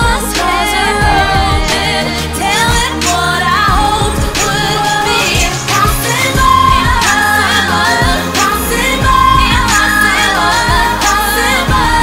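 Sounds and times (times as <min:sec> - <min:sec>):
backing track with steady beat: 0:00.0 - 0:12.0
woman singing a pop ballad: 0:00.0 - 0:12.0.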